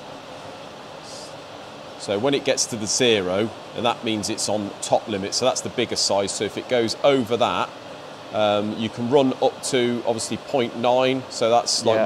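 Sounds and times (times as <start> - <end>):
faint hum: 0.0 - 12.0
steady hiss: 0.0 - 12.0.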